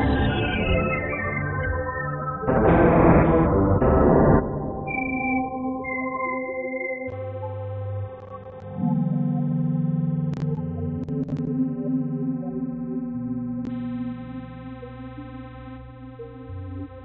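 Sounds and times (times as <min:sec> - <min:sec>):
sustained synthesizer tones: 0:00.0 - 0:17.0
synth bass line: 0:00.0 - 0:17.0.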